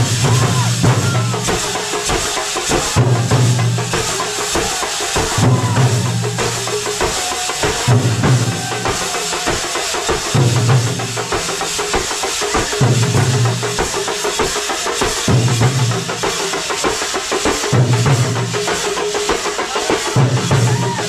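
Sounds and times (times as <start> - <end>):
drums beating fast rhythm: 0.0 - 21.0.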